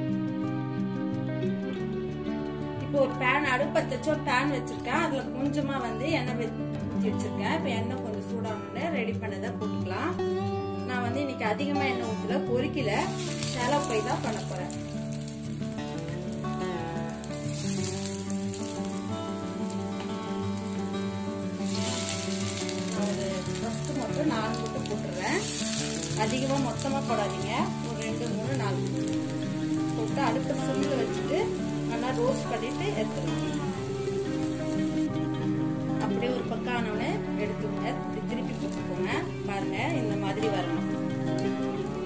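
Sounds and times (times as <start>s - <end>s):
instrumental background music: 0.0s - 42.0s
patties sizzling in oil: 12.6s - 42.0s.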